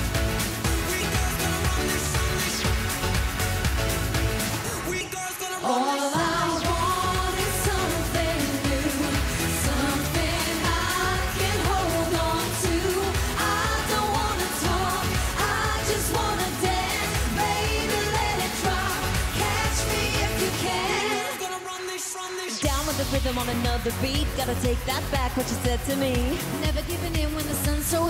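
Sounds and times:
band backing with driving beat: 0:00.0 - 0:21.6
women singing pop song: 0:00.6 - 0:03.0, 0:04.8 - 0:28.0.

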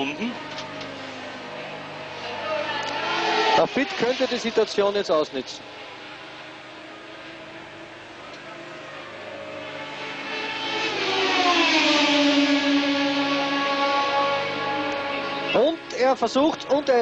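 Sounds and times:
racing car engines passing: 0:00.0 - 0:17.0.

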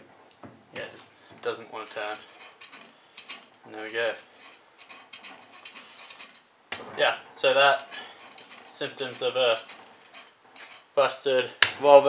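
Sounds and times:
metal parts clunk: 0:00.4 - 0:12.0.

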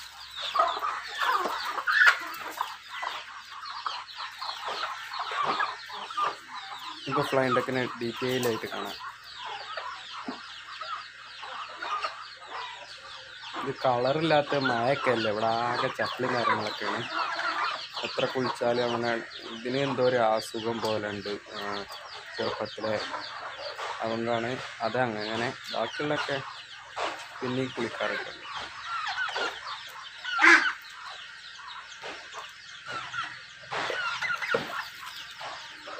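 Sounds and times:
hens clucking and peeping: 0:00.0 - 0:35.9.

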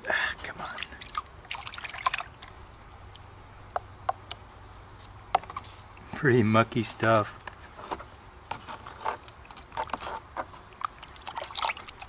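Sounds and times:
muddy water splashing: 0:00.8 - 0:03.6, 0:09.0 - 0:12.0.

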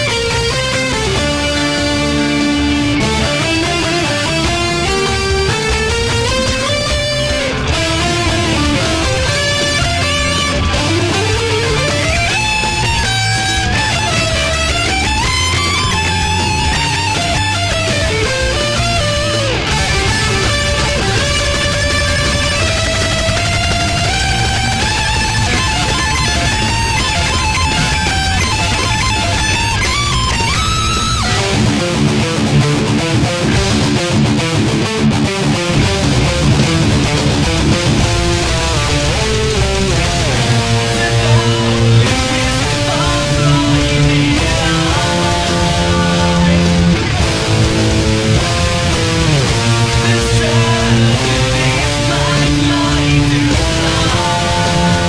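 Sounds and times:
distorted electric guitar lead: 0:00.0 - 0:55.0
heavy metal backing: 0:00.0 - 0:55.0.

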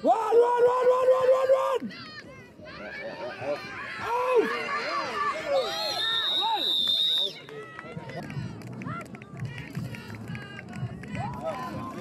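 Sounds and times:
spectators shouting excitedly: 0:00.0 - 0:06.7
crowd chatter: 0:01.2 - 0:12.0
referee's whistle: 0:05.4 - 0:07.4.

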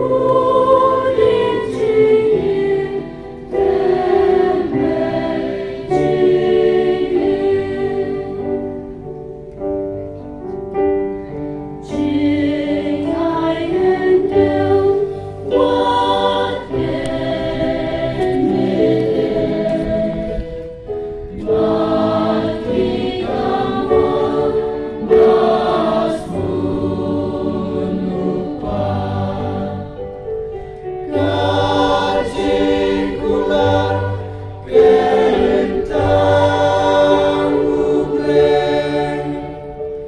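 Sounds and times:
male choir singing a hymn: 0:00.0 - 0:09.0, 0:11.8 - 0:20.7, 0:21.3 - 0:30.4, 0:31.0 - 0:40.0.

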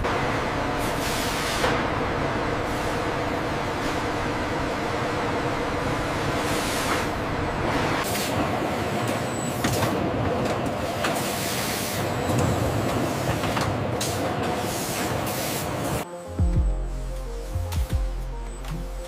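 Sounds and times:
industrial machinery hum: 0:00.0 - 0:19.0.

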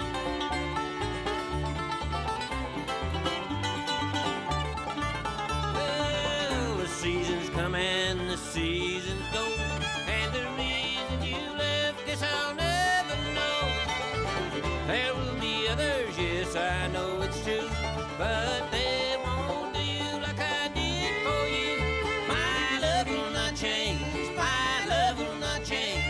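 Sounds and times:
acoustic guitar: 0:00.0 - 0:26.0
banjo: 0:00.0 - 0:26.0
fiddle: 0:00.0 - 0:26.0
mandolin: 0:00.0 - 0:26.0
upright bass: 0:00.0 - 0:26.0.

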